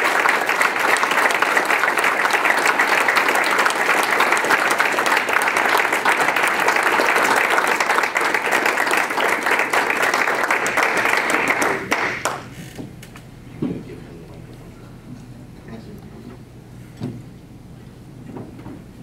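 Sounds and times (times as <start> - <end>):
audience applauding: 0.0 - 12.5.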